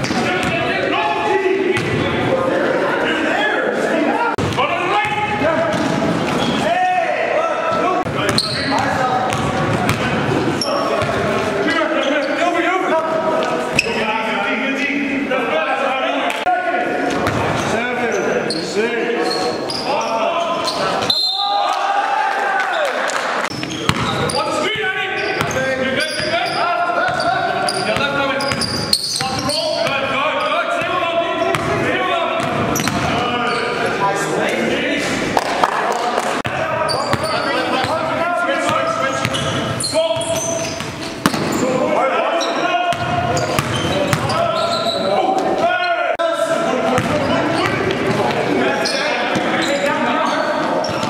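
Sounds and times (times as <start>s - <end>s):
players' voices: 0.0s - 51.0s
basketball bouncing on gym floor: 8.0s - 10.2s, 23.5s - 24.2s, 40.2s - 41.6s, 42.9s - 44.4s, 47.0s - 48.4s.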